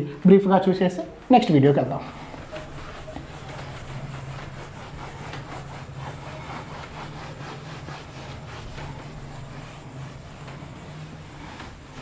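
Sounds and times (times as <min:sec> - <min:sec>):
duster rubbing on whiteboard: 0:01.4 - 0:12.0.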